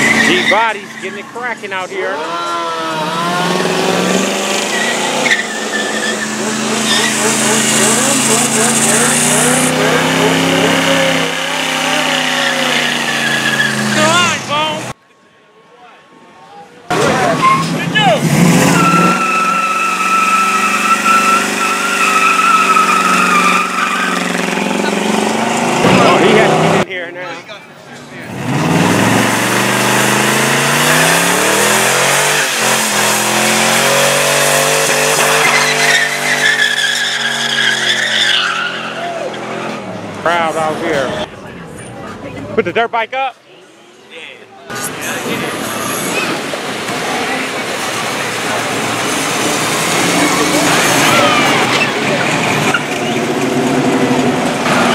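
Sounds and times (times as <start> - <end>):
tyres squealing on pavement: 0.0 - 14.9, 16.9 - 26.6, 28.2 - 41.1, 44.7 - 54.9
car engine revving: 0.0 - 15.0, 16.9 - 26.9, 28.2 - 41.3, 44.7 - 54.9.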